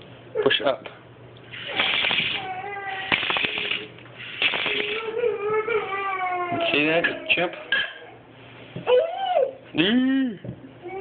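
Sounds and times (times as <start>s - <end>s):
short hissy bursts: 1.5s - 2.4s, 3.1s - 5.0s
toddler vocalizing: 1.7s - 3.2s, 4.8s - 7.4s.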